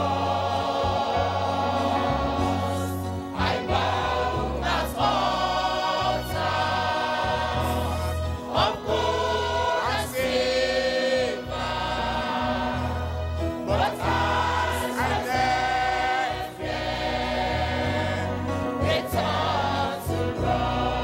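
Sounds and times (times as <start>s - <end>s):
church choir singing gospel: 0.0s - 21.0s.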